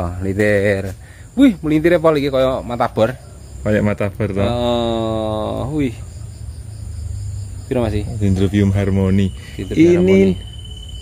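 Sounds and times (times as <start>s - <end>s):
high-pitched insect chirring: 0.0s - 11.0s.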